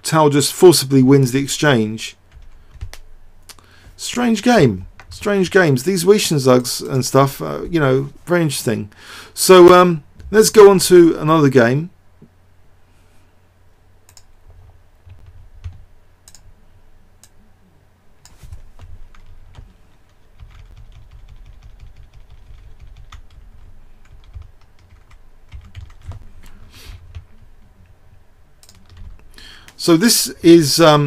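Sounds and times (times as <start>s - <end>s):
computer keyboard typing: 2.3s - 3.0s, 14.1s - 16.4s, 18.2s - 19.7s, 20.4s - 26.3s, 27.0s - 27.7s, 28.6s - 29.2s
scattered clicks: 14.0s - 14.4s, 15.1s - 16.5s, 28.6s - 29.8s.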